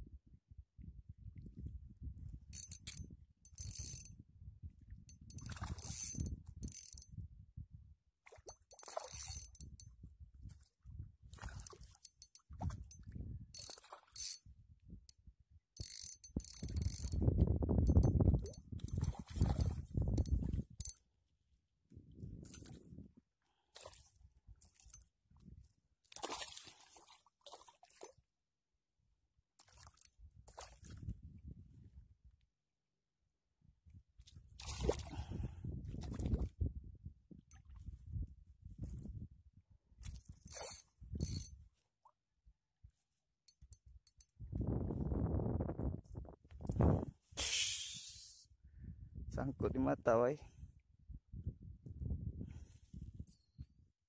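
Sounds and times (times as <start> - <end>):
fishing reel gears clicking: 2.5 - 4.1, 5.1 - 7.1, 8.7 - 9.9, 13.6 - 14.5, 15.8 - 19.1, 20.1 - 21.0, 40.4 - 41.5.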